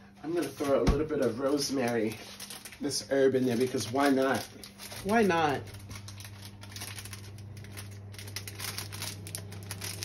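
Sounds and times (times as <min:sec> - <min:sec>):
steady low hum: 0:00.0 - 0:10.0
plastic packet crinkling: 0:00.4 - 0:10.0.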